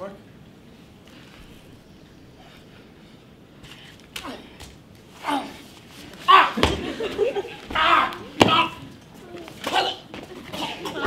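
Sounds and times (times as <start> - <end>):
man crying out: 6.3 - 6.8, 7.7 - 8.9.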